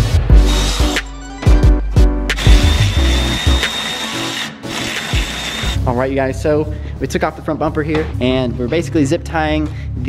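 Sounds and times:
music with heavy bass: 0.0 - 3.7
power tool whine: 2.4 - 5.8.

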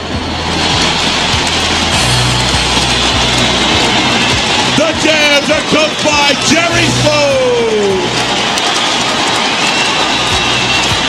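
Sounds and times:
arena music with bass: 0.0 - 5.0
crowd cheering: 0.0 - 11.0.

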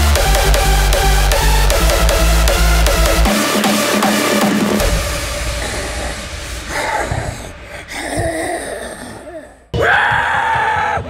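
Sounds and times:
sudden loud noise burst: 4.4 - 8.0.

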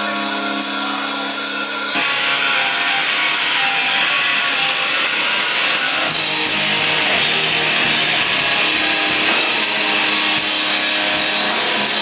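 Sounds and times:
distorted electric guitar chord: 0.0 - 12.0
full band playing: 0.0 - 12.0.

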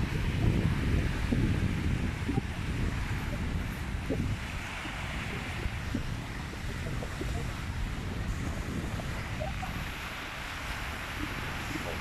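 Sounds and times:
small waves washing on sand: 0.0 - 12.0
wind buffeting microphone: 0.0 - 12.0.

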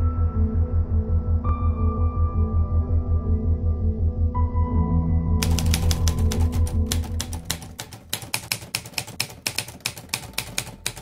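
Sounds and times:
ambient music with pulsing bass: 0.0 - 6.9
rapid keyboard key clicks: 5.4 - 11.0.

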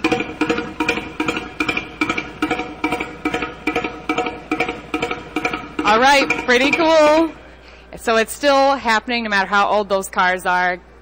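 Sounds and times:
engine exhaust puffs and knocks: 0.0 - 7.4
steady ringing tone: 0.0 - 7.5.

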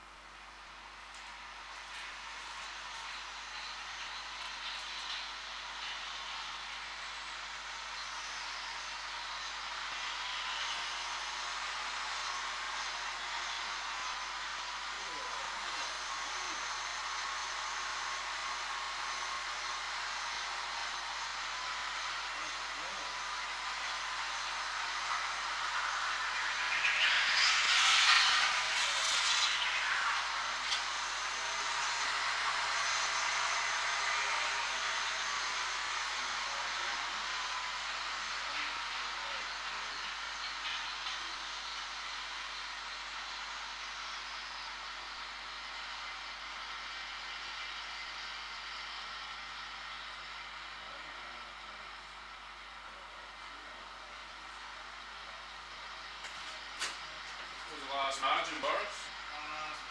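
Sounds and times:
rushing noise of race: 0.9 - 47.4.

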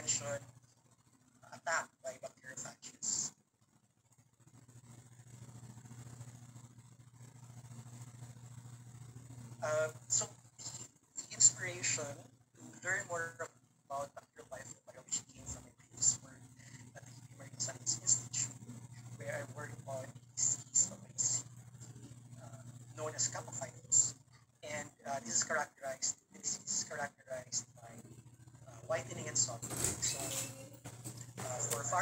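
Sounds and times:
person talking over online call: 0.0 - 0.5, 22.4 - 28.1, 28.7 - 30.5, 31.4 - 32.0
low hum: 0.0 - 32.0.

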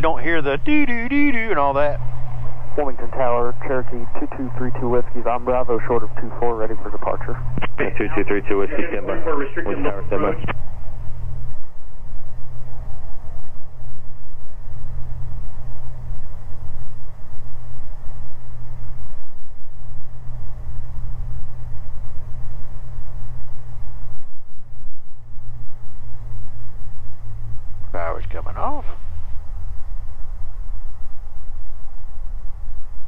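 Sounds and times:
aircraft piston engines droning: 0.0 - 33.0
propellers: 0.0 - 33.0.

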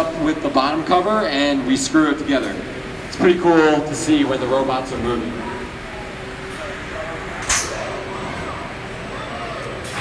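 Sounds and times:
factory floor background: 0.0 - 10.0.

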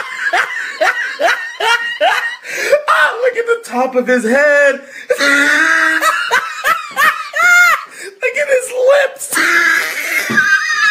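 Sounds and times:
person laughing: 0.0 - 2.5, 5.1 - 7.9, 9.4 - 10.9.

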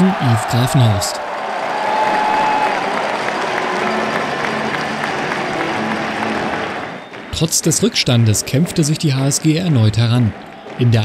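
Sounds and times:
crowd shouting: 0.0 - 7.1
crowd clapping: 0.0 - 11.0.

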